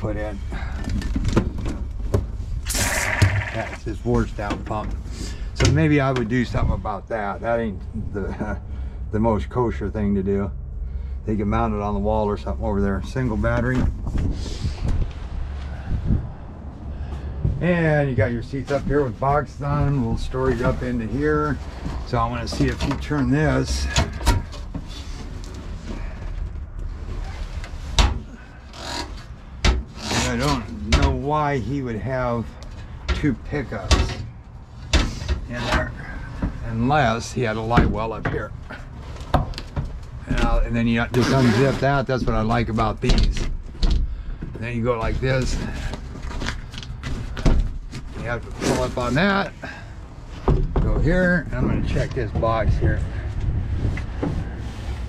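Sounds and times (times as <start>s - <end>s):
microphone handling rumble: 11.9s - 23.5s, 50.3s - 55.0s.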